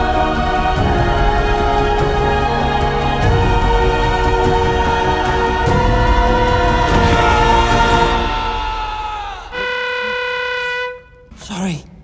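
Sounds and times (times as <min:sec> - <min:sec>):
trailer music: 0:00.0 - 0:12.0
steady horn note: 0:09.5 - 0:11.4.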